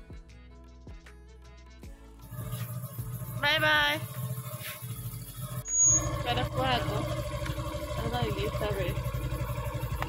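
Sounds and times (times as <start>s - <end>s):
motorcycle engine idling: 2.0s - 10.0s
high-pitched squeal: 2.3s - 6.8s.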